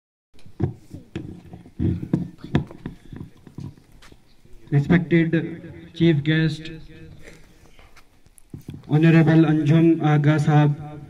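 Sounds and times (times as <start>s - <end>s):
microphone handling thuds: 0.5s - 4.2s.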